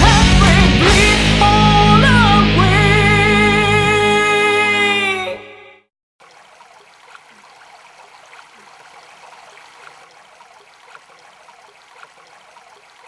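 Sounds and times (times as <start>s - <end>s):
running water: 6.2s - 13.0s
water gurgles and drips: 6.2s - 13.0s.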